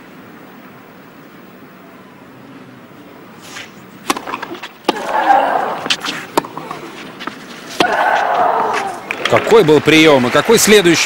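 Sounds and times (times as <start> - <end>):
racket striking tennis ball: 4.0 - 9.5.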